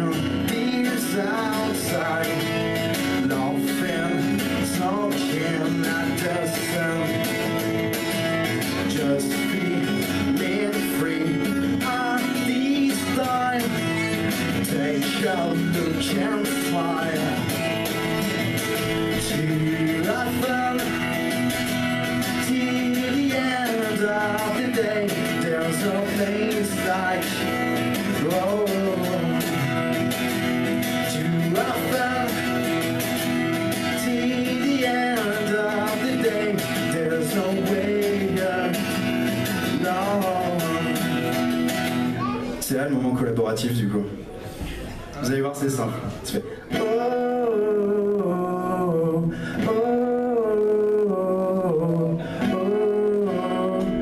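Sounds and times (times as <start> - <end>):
man singing: 0.0 - 41.7, 45.7 - 54.0
acoustic guitar strumming: 0.0 - 54.0.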